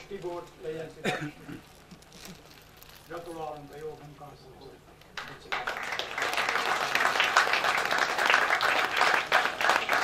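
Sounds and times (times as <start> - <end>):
faint crinkling and rustling: 0.0 - 4.4.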